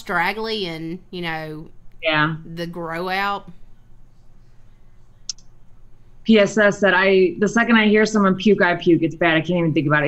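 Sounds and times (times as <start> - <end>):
faint background hum: 0.0 - 10.0.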